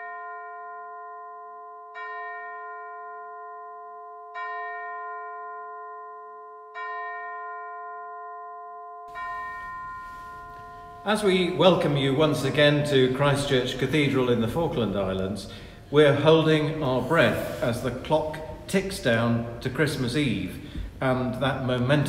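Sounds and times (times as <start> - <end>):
bell struck slowly: 0.0 - 13.8
faint room hiss: 9.1 - 22.0.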